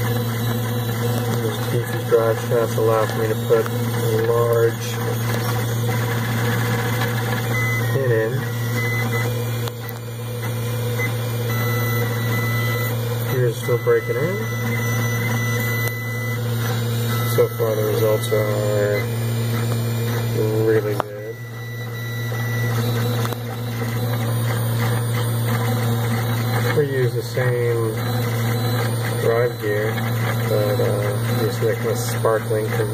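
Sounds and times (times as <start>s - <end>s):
gearbox motor hum: 0.0s - 32.9s.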